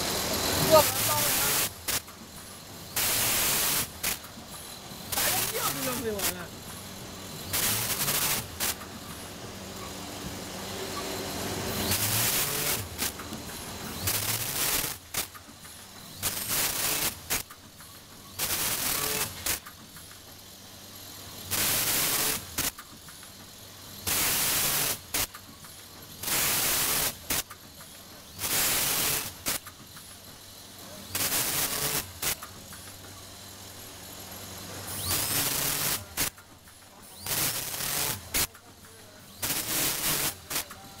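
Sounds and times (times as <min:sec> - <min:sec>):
machine hissing bursts: 0:00.0 - 0:41.0
sharp machine clicks: 0:00.1 - 0:09.4, 0:10.9 - 0:33.8, 0:34.9 - 0:41.0.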